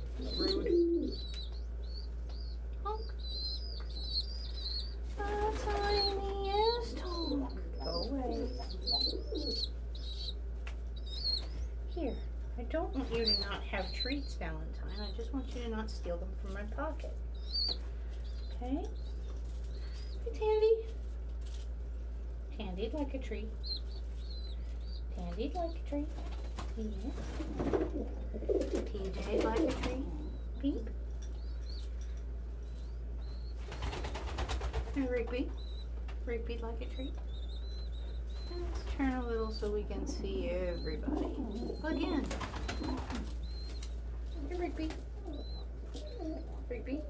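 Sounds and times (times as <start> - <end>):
steady low hum: 0.0 - 47.0
young pigeon peeping: 0.0 - 47.0
pigeon wings flapping: 5.1 - 7.3, 26.2 - 30.1, 33.6 - 35.3, 41.3 - 43.9.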